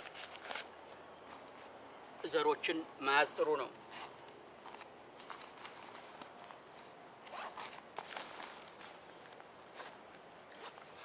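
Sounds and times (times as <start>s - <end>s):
gear rasping and rustling: 3.8s - 11.0s.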